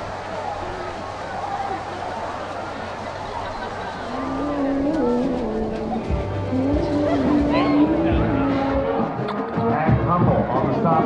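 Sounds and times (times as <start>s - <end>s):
murmur of crowd voices: 0.0s - 11.0s
band playing a melody: 4.1s - 11.0s.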